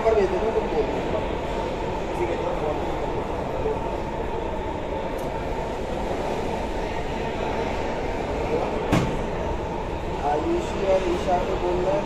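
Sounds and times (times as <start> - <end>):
faint background chatter: 0.0 - 12.0.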